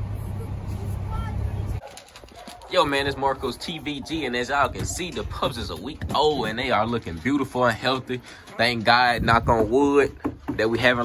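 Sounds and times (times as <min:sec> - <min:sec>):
road vehicle rumbling: 0:00.0 - 0:01.9
faint high voices: 0:00.2 - 0:01.8.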